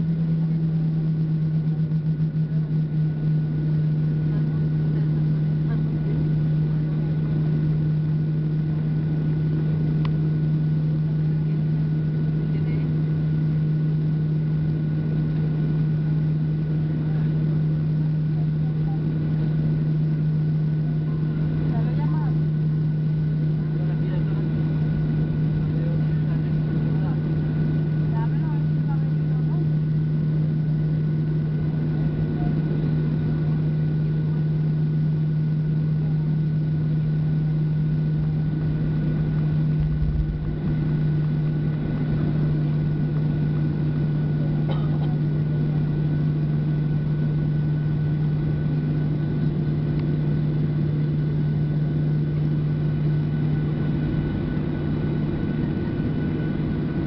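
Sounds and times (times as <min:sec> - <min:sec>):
jet engines droning at idle: 0:00.0 - 0:57.0.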